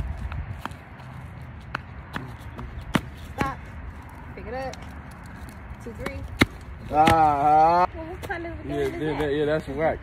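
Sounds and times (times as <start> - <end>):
flip-flops slapping on concrete: 0.0 - 9.4.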